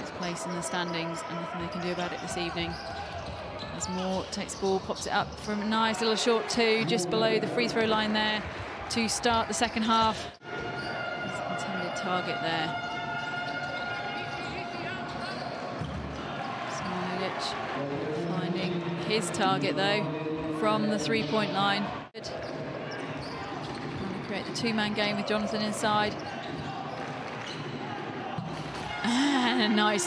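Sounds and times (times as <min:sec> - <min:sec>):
arena crowd noise: 0:00.0 - 0:30.0.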